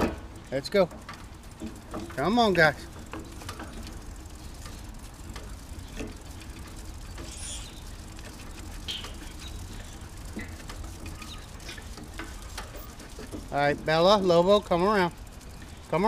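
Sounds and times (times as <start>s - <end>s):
dog paws pattering on asphalt: 0.0s - 16.0s
light irregular ticks: 0.0s - 16.0s.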